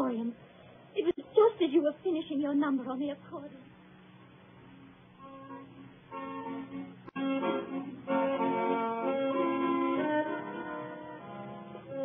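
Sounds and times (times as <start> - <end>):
accordion playing held chords: 5.2 - 12.0.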